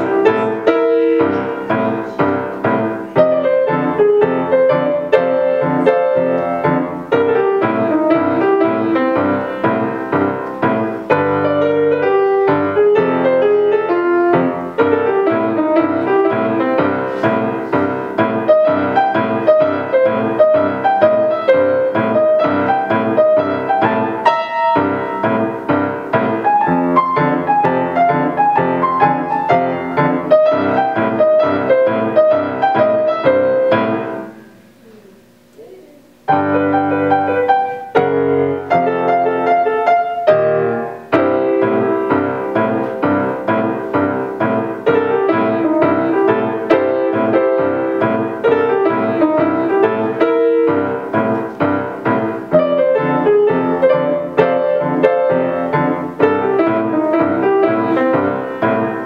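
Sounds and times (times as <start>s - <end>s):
boogie piano piece: 0.0s - 59.0s.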